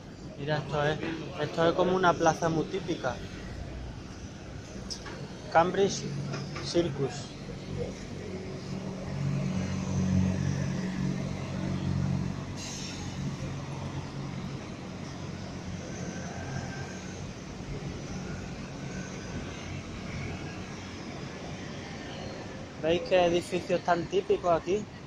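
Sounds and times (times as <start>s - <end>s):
bus engine passing: 0.0s - 25.0s
traffic on wet road: 0.2s - 25.0s
brief hiss: 12.6s - 13.2s.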